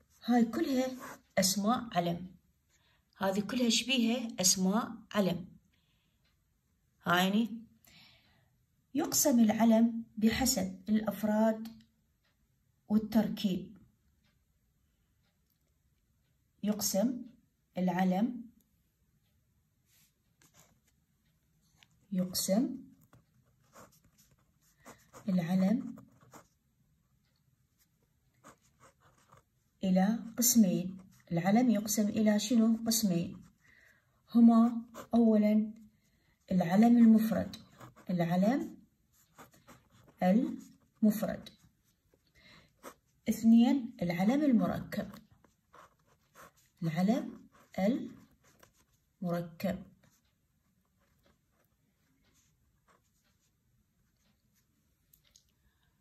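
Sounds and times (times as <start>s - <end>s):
pen scratching on paper: 0.0s - 1.6s, 20.0s - 21.0s, 21.8s - 26.6s, 27.7s - 33.6s, 34.2s - 35.8s, 36.4s - 50.3s, 50.9s - 54.2s.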